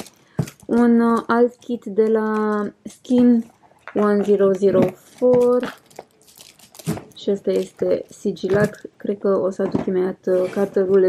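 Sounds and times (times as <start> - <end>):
paper and cardboard rustling: 0.0 - 8.9.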